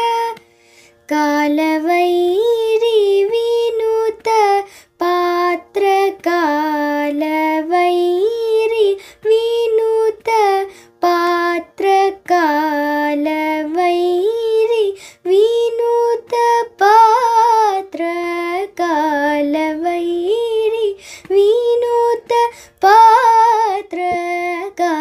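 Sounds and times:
girl singing unaccompanied: 0.0 - 25.0
quick breaths: 0.5 - 1.0, 21.0 - 21.3.

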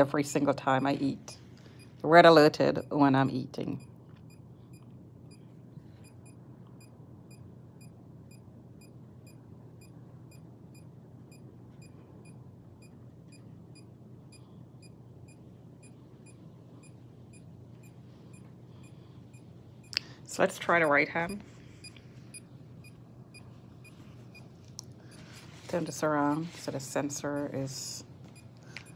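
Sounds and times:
low steady hum: 0.0 - 28.9.

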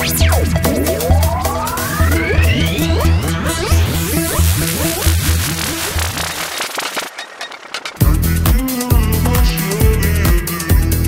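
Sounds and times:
electronic dance music with bass beat: 0.0 - 6.9.

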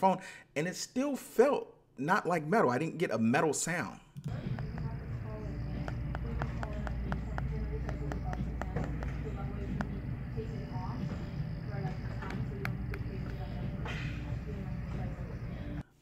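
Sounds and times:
fingertips tapping on phone: 4.3 - 10.0.

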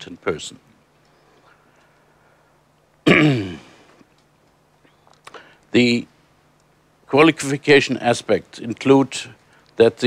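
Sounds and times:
man coughing into microphone: 3.0 - 3.9.

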